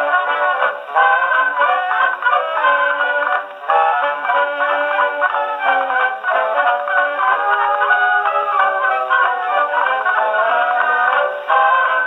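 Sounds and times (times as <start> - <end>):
dance orchestra on old record: 0.0 - 12.0.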